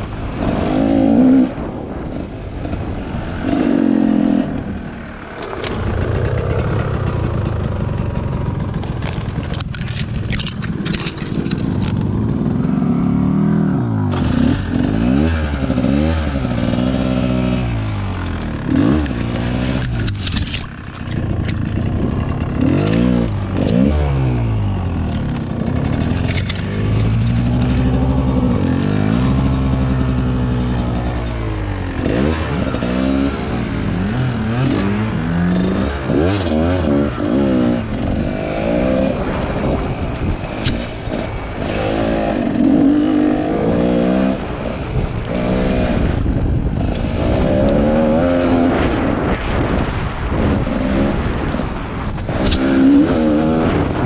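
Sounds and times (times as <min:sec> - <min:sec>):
dirt bike engine revving: 0:00.3 - 0:01.9, 0:03.3 - 0:09.6, 0:10.6 - 0:54.0
knocks and clatter: 0:05.4 - 0:12.2, 0:25.0 - 0:28.1.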